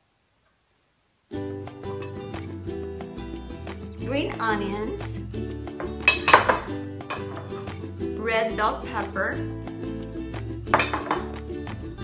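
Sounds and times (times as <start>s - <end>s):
background music: 1.3s - 12.0s
ceramic bowls clinking: 5.8s - 7.7s, 10.7s - 11.4s.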